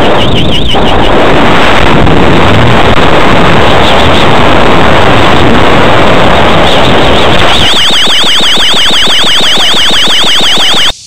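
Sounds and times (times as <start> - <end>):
warbling electronic beep: 0.0 - 1.2, 7.4 - 11.0
loud rushing wind on microphone: 0.0 - 7.7.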